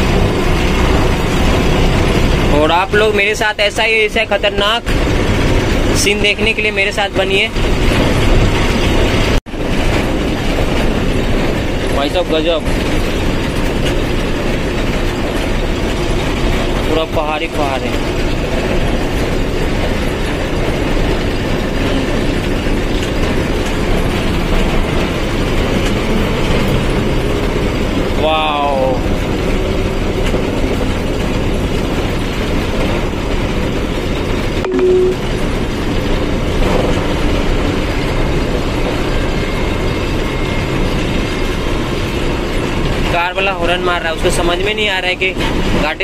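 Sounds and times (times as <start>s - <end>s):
truck engine and road noise: 0.0s - 46.0s
short wavering pitched sound: 34.6s - 35.3s
brief steady tone: 34.6s - 35.4s.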